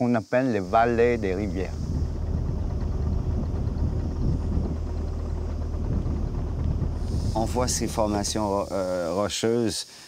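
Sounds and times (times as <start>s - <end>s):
boat engine running: 0.6s - 8.8s.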